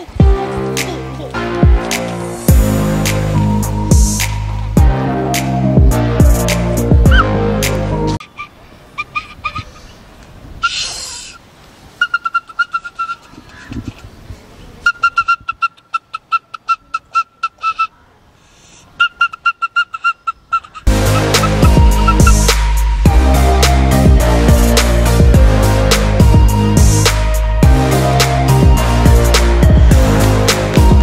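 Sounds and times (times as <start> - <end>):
music track with a beat: 0.2 - 8.2, 20.9 - 31.0
bamboo flute toots: 7.1 - 7.3, 10.6 - 11.4, 12.0 - 13.3, 14.8 - 23.0.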